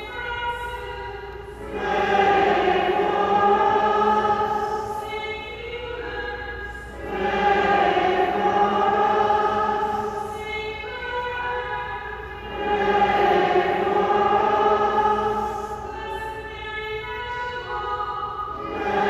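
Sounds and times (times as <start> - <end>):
voices singing religious music: 0.0 - 19.0.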